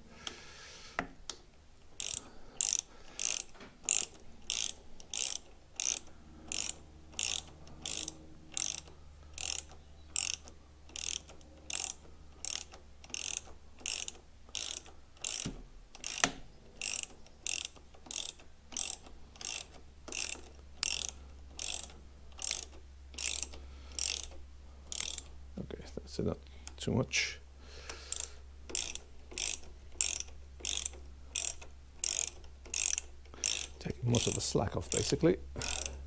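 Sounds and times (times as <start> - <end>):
hand ratchet clicking: 1.3 - 25.4, 27.8 - 36.0.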